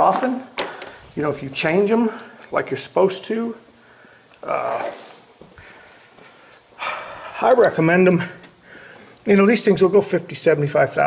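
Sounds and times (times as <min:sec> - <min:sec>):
man breathing close to microphone: 0:00.6 - 0:01.2, 0:03.7 - 0:04.4, 0:05.4 - 0:07.4, 0:08.6 - 0:09.2.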